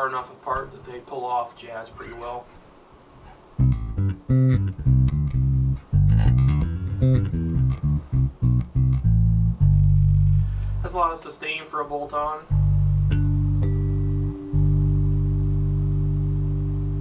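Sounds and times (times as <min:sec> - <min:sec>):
electric bass plucked fingerstyle: 0:03.6 - 0:11.1, 0:12.4 - 0:17.0.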